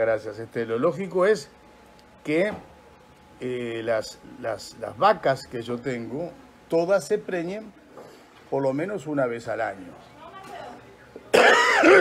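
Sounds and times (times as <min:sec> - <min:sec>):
man coughing: 0:11.3 - 0:12.0.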